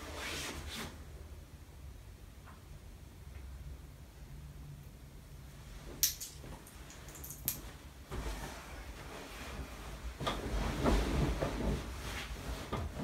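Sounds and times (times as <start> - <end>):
fabric rustling: 5.6 - 13.0.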